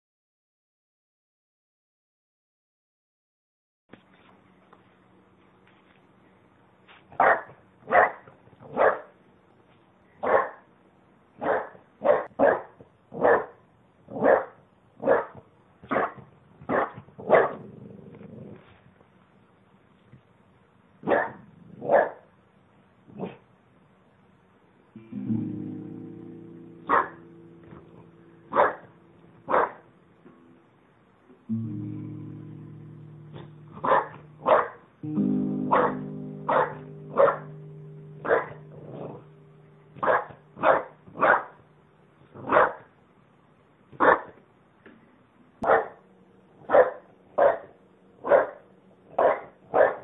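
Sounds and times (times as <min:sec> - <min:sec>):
dog barking: 0:07.1 - 0:09.1, 0:10.2 - 0:10.7, 0:11.4 - 0:17.6, 0:21.0 - 0:22.3, 0:23.1 - 0:23.4, 0:26.9 - 0:27.2, 0:28.5 - 0:28.9, 0:29.5 - 0:29.8, 0:33.4 - 0:34.8, 0:35.7 - 0:37.5, 0:38.2 - 0:39.2, 0:40.0 - 0:41.6, 0:42.4 - 0:42.9, 0:43.9 - 0:44.4, 0:45.6 - 0:46.0, 0:46.6 - 0:50.0
guitar chord strummed: 0:25.0 - 0:42.5.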